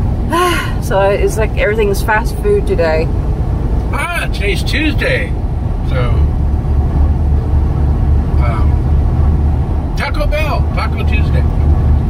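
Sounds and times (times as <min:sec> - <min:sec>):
vehicle engine and tyre noise: 0:00.0 - 0:12.0.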